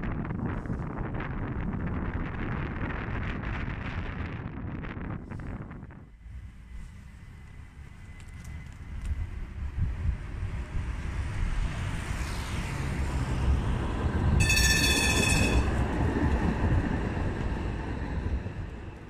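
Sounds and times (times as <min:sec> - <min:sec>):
tram passing: 0:06.1 - 0:19.0
shrill high tone: 0:14.4 - 0:15.8.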